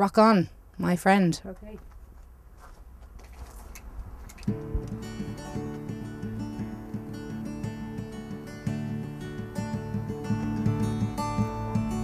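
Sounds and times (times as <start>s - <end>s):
acoustic guitar strummed: 4.5s - 12.0s.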